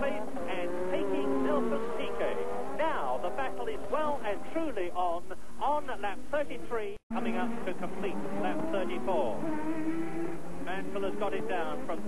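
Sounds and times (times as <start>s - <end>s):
person speaking: 0.0s - 9.3s, 10.7s - 12.0s
racing car engines at speed: 0.0s - 12.0s.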